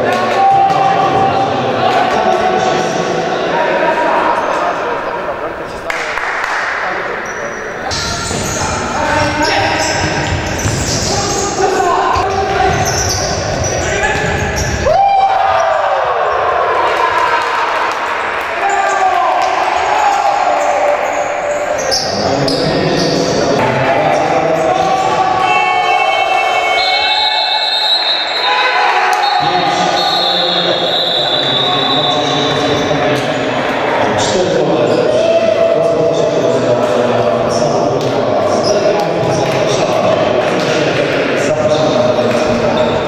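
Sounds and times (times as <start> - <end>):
players shouting: 7.5 - 34.2.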